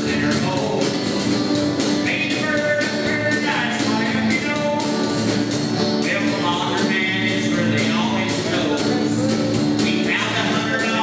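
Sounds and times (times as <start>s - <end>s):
acoustic guitars: 0.0s - 11.0s
drum kit steady beat: 0.0s - 11.0s
electric bass: 0.0s - 11.0s
sliding melody line: 0.0s - 11.0s.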